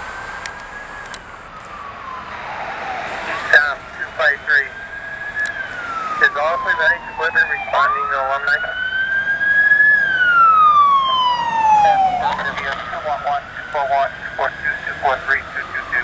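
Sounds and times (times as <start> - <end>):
fire engine siren wailing: 0.0 - 16.0
second siren rapid warble: 0.7 - 16.0.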